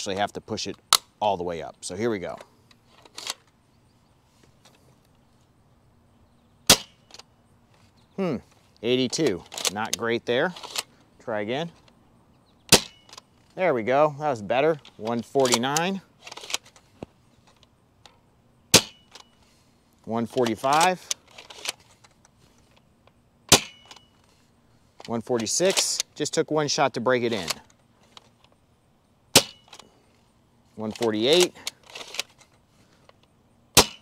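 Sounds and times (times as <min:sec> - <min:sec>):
dart blaster spring release crack: 0:12.7 - 0:13.2, 0:33.8 - 0:34.0.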